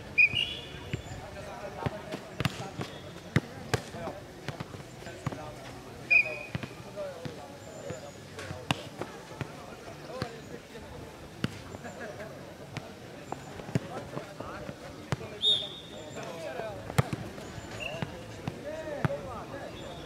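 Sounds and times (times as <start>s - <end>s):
ball kicked and bouncing: 1.8s - 5.5s, 6.5s - 9.5s, 16.8s - 19.3s.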